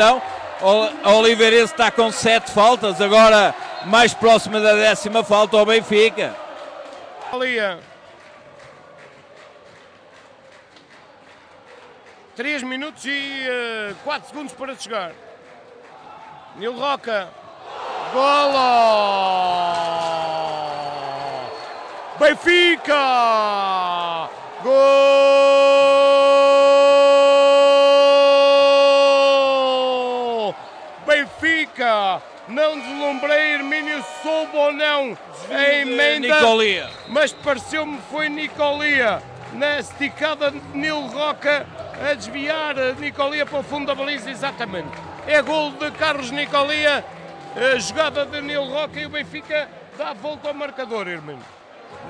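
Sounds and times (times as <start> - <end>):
excited commentary: 0.0 - 6.4, 22.1 - 51.4
man shouting goal: 18.0 - 21.5, 22.3 - 36.8.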